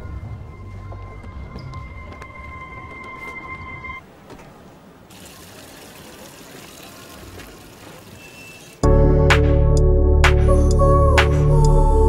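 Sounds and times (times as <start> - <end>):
water running from a tap: 5.1 - 8.8.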